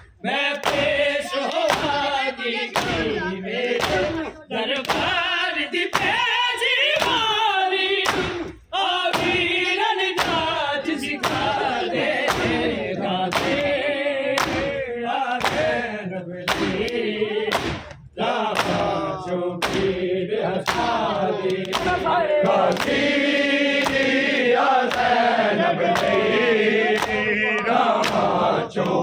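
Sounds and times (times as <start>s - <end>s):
chest beating slaps: 0.0s - 5.2s, 5.9s - 6.3s, 7.0s - 7.4s, 8.0s - 15.8s, 16.5s - 29.0s
men chanting a lament: 0.0s - 29.0s.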